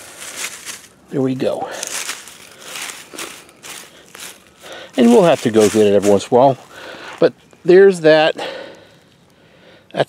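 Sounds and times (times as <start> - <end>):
dry leaves rustling and crackling: 0.0 - 8.2.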